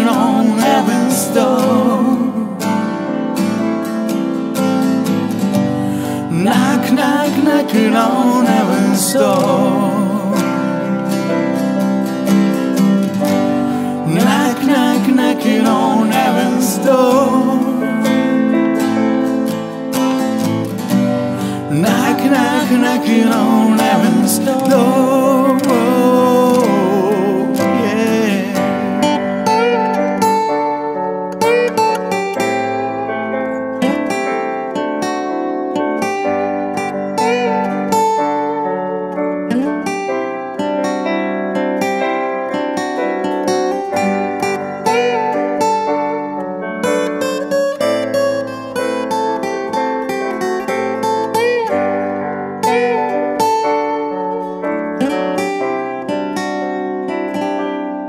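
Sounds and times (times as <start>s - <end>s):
acoustic guitar: 0.0s - 58.0s
piano: 0.0s - 58.0s.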